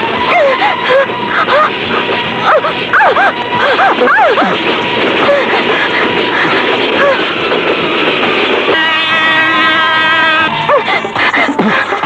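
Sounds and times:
loud noisy background: 0.0s - 12.0s.

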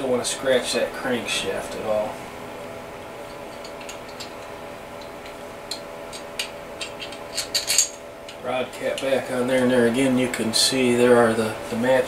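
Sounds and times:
faint steady hum: 0.0s - 12.0s
metal clicks and clinks: 3.3s - 8.4s.

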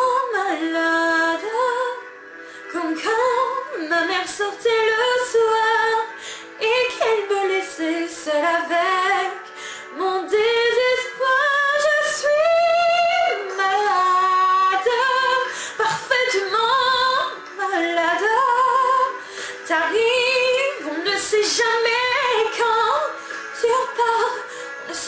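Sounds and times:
woman singing slow ballad: 0.0s - 25.0s
singer breathing: 2.4s - 2.7s, 6.1s - 6.6s, 9.5s - 10.0s, 15.5s - 15.8s, 19.2s - 19.6s, 24.4s - 24.8s.

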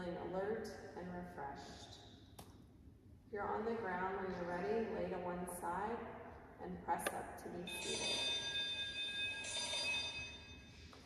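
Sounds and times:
small bell ringing: 7.7s - 10.8s.

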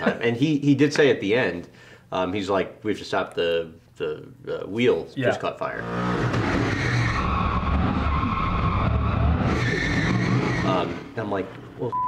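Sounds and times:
tyre squeal: 6.1s - 11.1s.

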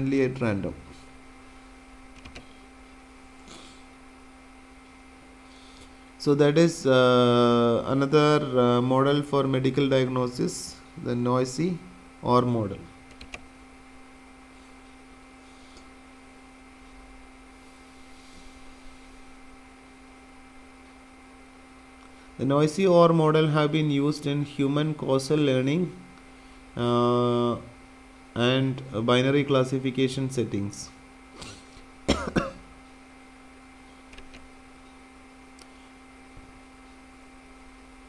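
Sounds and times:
faint electrical hum with tones: 0.0s - 38.0s
person coughing: 3.4s - 3.8s, 31.4s - 32.7s.

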